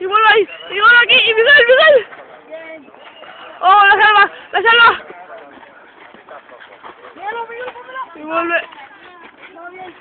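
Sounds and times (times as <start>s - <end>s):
faint outdoor background noise: 0.0s - 10.0s
people talking and calling out: 0.0s - 10.0s.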